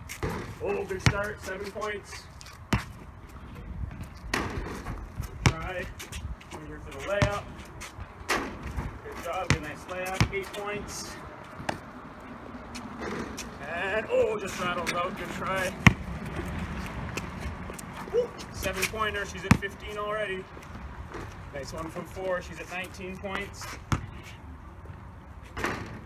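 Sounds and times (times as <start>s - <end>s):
basketball bouncing on concrete: 0.1s - 1.7s, 2.7s - 3.1s, 3.9s - 5.9s, 7.0s - 11.9s, 15.4s - 17.8s, 18.6s - 20.0s, 23.3s - 24.3s
basketball hitting hoop: 0.2s - 1.2s, 4.3s - 4.8s, 15.8s - 16.1s, 25.6s - 26.0s
low outdoor rumble: 0.2s - 26.0s.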